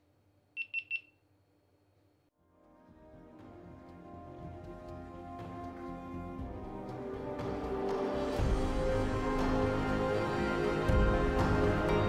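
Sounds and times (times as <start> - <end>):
high-pitched electronic camera beeps: 0.6 - 1.1.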